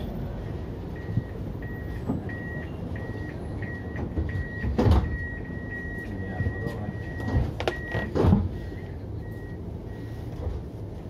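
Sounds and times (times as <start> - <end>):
tram door warning beeping: 0.0 - 11.0
tram low hum: 0.0 - 11.0.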